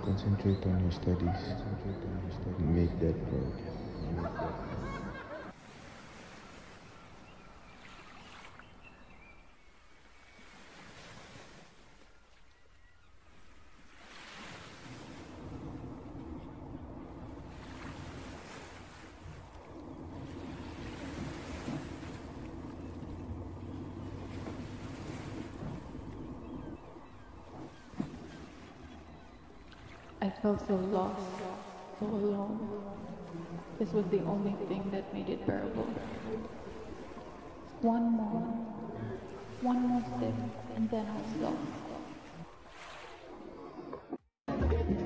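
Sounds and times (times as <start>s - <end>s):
waves washing: 0.0s - 44.2s
wind: 0.0s - 45.0s.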